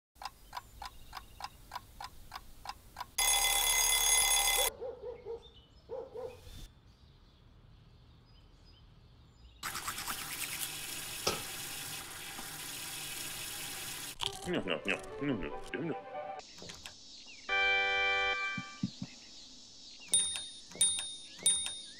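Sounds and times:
alarm clock ticking: 3.0 - 4.7, 20.1 - 21.9
alarm clock bell ringing: 3.2 - 4.7, 20.2 - 21.9.

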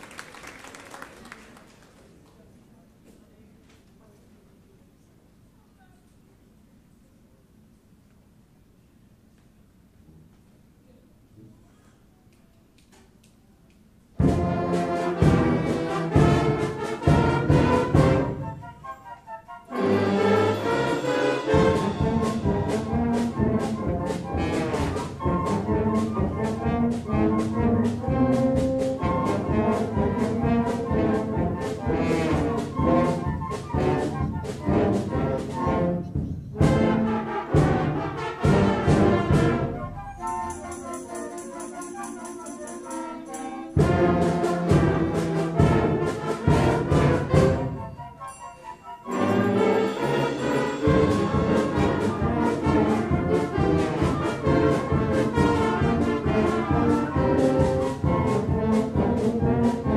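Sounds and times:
concert band playing: 14.2 - 18.9, 19.6 - 59.9.

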